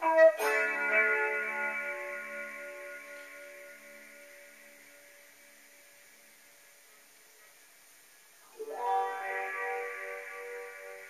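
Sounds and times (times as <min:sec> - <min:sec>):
guitar chord ringing: 0:00.0 - 0:07.1, 0:08.5 - 0:11.0.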